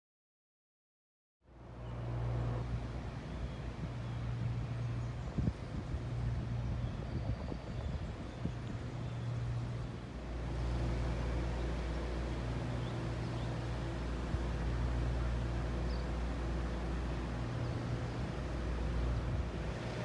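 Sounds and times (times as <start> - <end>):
low machine hum: 1.5 - 20.0.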